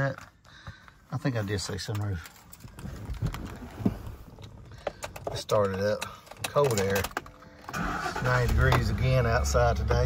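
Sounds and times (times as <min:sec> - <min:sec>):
car engine idling: 0:04.0 - 0:10.0.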